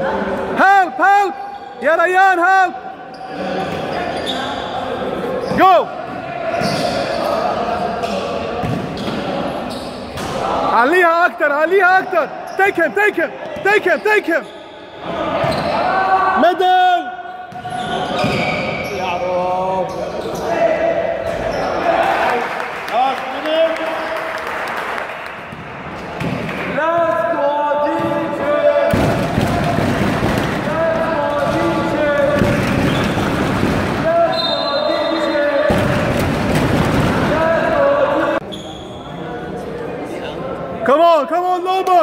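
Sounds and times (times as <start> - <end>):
players and spectators shouting: 26.7 - 38.4
basketball bouncing on court: 28.9 - 34.1.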